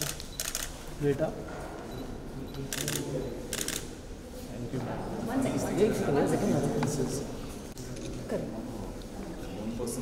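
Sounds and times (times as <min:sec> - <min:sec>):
camera shutters firing: 0:00.0 - 0:00.8, 0:02.7 - 0:03.9.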